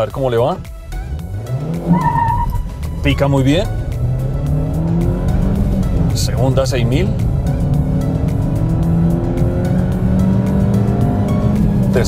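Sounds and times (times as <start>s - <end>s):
car engine revving: 0.6s - 12.0s.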